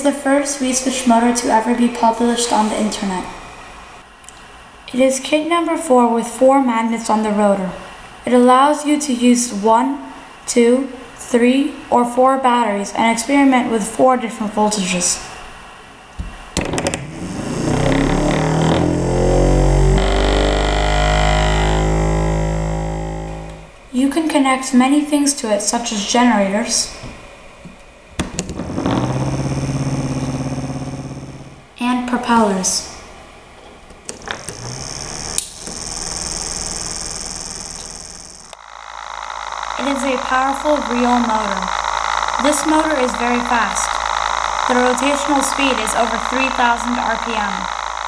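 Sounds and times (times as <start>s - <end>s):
electric motor buzzing hum: 16.8s - 23.8s, 28.5s - 31.8s, 34.2s - 48.0s.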